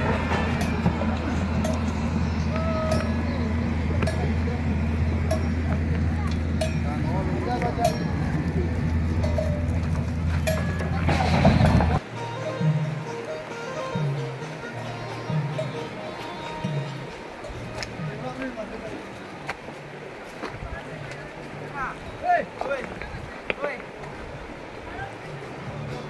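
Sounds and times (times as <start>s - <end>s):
steady low hum: 0.0s - 12.0s
distant chatter: 0.0s - 26.0s.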